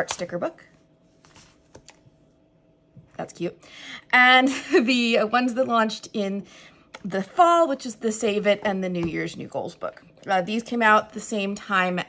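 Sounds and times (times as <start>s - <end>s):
sticker books handled on tabletop: 1.1s - 2.1s.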